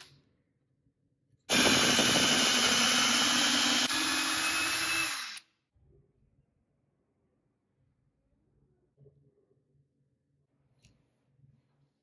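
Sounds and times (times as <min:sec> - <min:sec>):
cordless drill boring into wood: 0:01.5 - 0:05.5.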